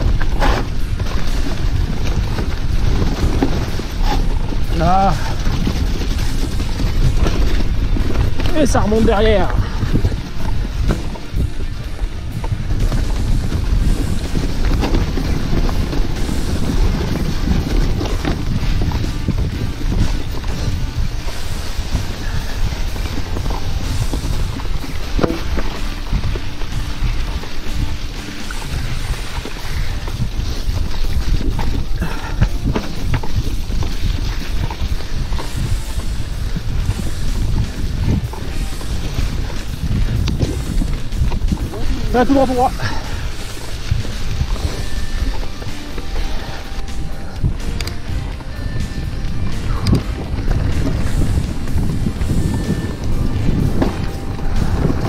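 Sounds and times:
bike rattling over bumps: 0.0 - 55.0
wind rushing over microphone: 0.0 - 55.0.

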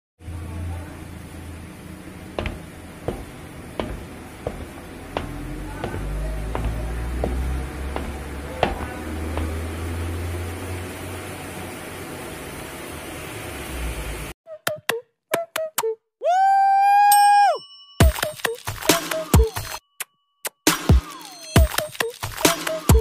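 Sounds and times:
footsteps on hard floor: 2.3 - 9.9.

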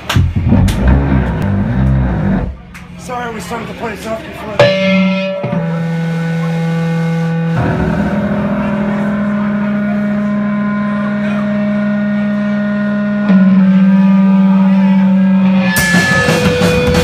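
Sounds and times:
guitar amplifier feedback drone: 0.2 - 2.6, 4.6 - 17.0.

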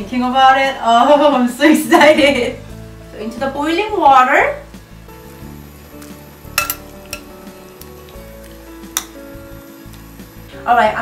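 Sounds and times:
metal tongs scraping a pot: 6.6 - 7.3.

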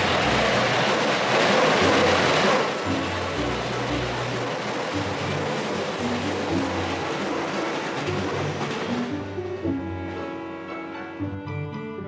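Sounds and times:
background music: 0.0 - 12.0
train rumbling over bridge: 0.0 - 12.0.

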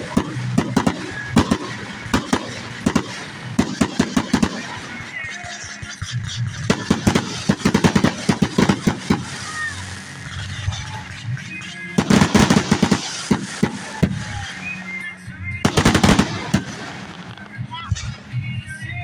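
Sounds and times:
fireworks bangs and crackles: 0.0 - 19.0.

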